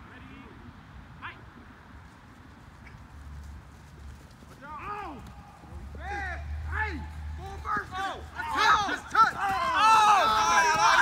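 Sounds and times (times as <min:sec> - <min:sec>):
men shouting: 0:06.0 - 0:11.0.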